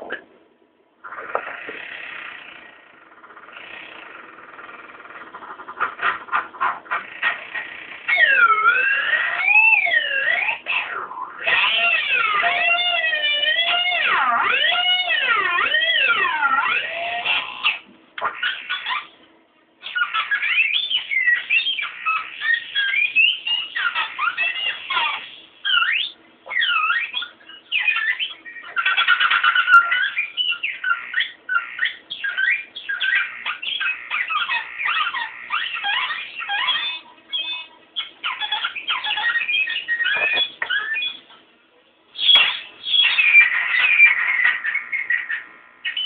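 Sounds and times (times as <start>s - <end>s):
squealing electric guitar: 1.0s - 19.2s, 19.8s - 41.3s, 42.2s - 46.0s.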